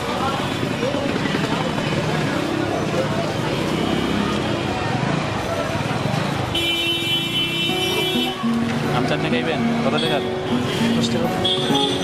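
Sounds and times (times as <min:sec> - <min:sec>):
people talking: 0:00.0 - 0:06.5
traffic noise: 0:00.0 - 0:12.0.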